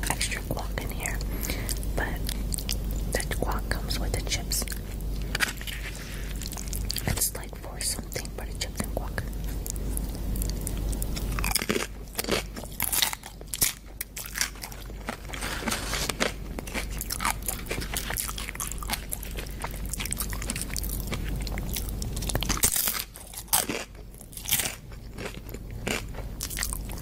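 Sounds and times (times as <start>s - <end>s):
person chewing crunchy food: 0.0s - 27.0s.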